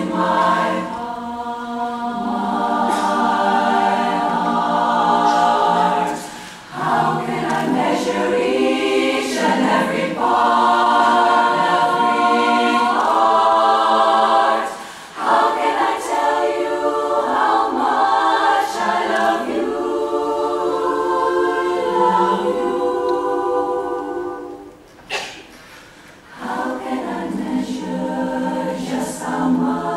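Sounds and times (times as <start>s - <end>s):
women's chorus singing a cappella: 0.0s - 25.3s, 26.0s - 29.9s
singers breathing: 6.2s - 6.7s, 14.7s - 15.2s.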